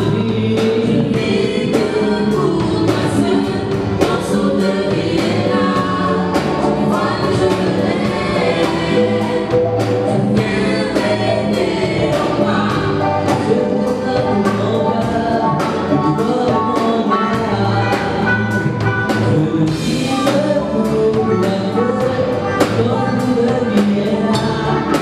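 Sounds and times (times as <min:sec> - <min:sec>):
drum kit beat: 0:00.0 - 0:25.0
electric keyboard: 0:00.0 - 0:25.0
group singing gospel song: 0:00.0 - 0:25.0.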